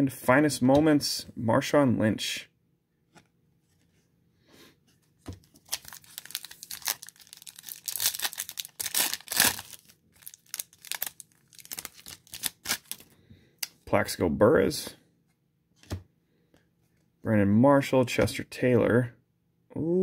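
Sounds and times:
foil wrapper tearing and crinkling: 5.6s - 13.1s.

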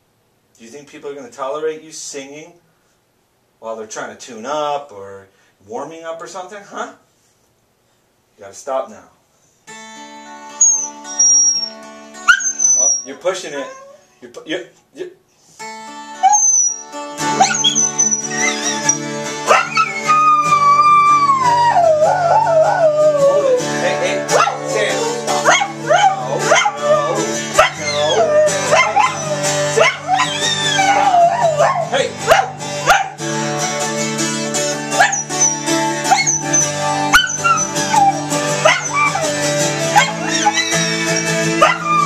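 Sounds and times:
acoustic guitar chord ringing: 9.7s - 12.3s, 15.6s - 22.3s, 22.9s - 42.0s
dog whining: 10.6s - 14.0s, 16.2s - 33.2s, 34.9s - 42.0s.

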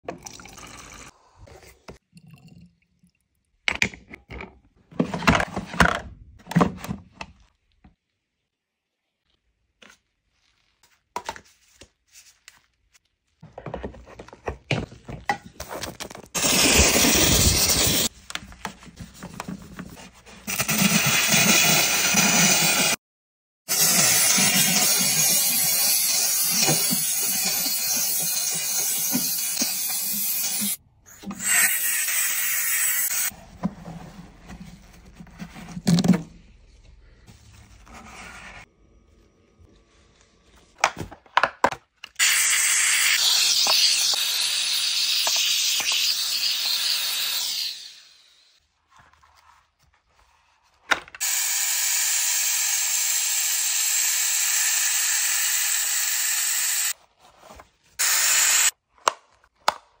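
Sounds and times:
steam cleaner hissing: 42.2s - 48.2s, 51.2s - 56.9s, 58.0s - 58.7s.

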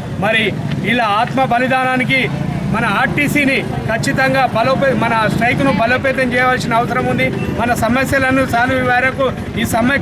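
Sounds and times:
man speaking forcefully: 0.1s - 10.0s.

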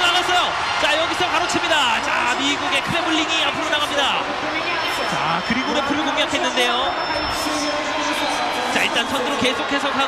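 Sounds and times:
sports commentator talking: 0.0s - 10.0s.

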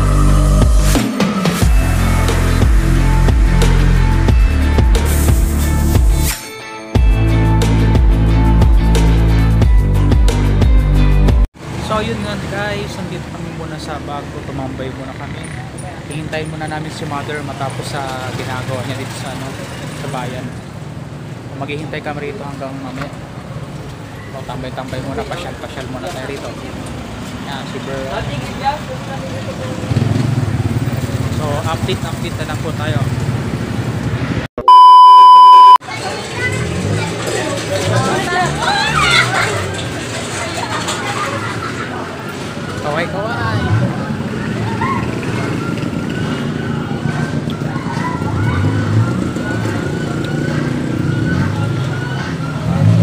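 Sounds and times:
vehicle engines on busy street: 0.0s - 6.4s, 7.0s - 53.0s
motorcycle engine running: 29.7s - 32.3s
voices talking: 35.6s - 53.0s.

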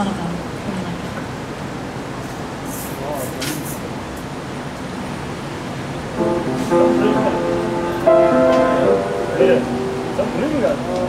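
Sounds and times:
indistinct audience chatter: 6.2s - 11.0s.

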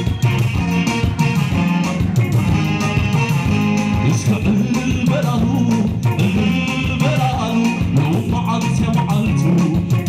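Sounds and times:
saxophone: 0.0s - 8.3s
electric bass line: 0.0s - 10.0s
keyboard: 0.0s - 10.0s.

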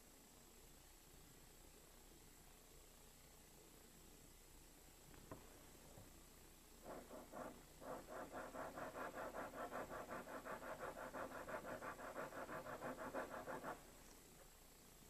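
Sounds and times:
pen scribbling on paper: 6.8s - 13.9s.

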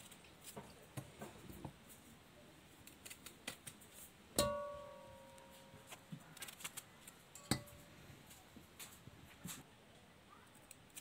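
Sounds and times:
metal pot knocked and ringing: 4.4s - 5.8s, 7.4s - 7.9s.

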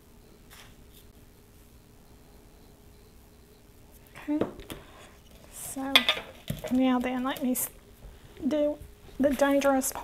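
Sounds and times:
woman speaking: 4.1s - 4.6s, 5.5s - 7.8s, 8.4s - 10.0s.

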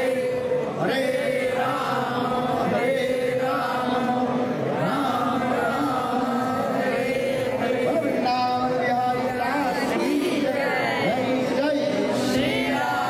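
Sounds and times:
group singing along: 0.0s - 11.4s, 12.2s - 13.0s
man chanting into a microphone: 0.0s - 13.0s.

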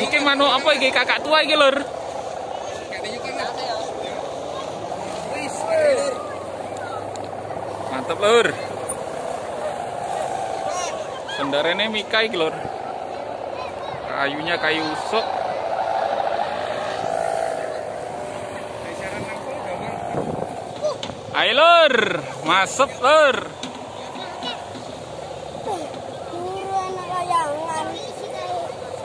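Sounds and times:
droning hum of kite hummers: 0.0s - 29.0s
outdoor crowd chatter: 0.0s - 29.0s.

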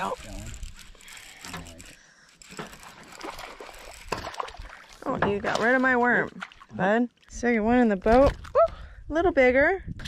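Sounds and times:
fishing reel being cranked: 0.0s - 4.6s
fish splashing in water: 2.9s - 6.7s.

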